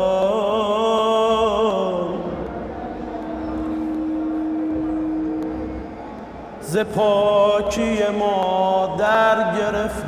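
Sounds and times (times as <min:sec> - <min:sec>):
chanted religious lament: 0:00.0 - 0:02.6, 0:06.6 - 0:10.0
steady droning tone: 0:01.6 - 0:08.0.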